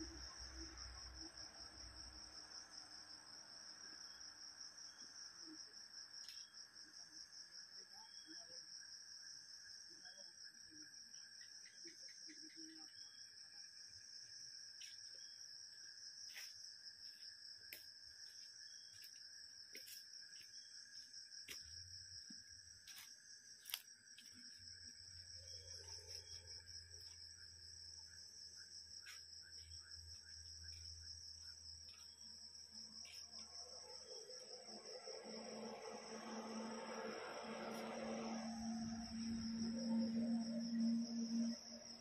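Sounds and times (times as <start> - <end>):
insects chirring: 0.0 - 42.0.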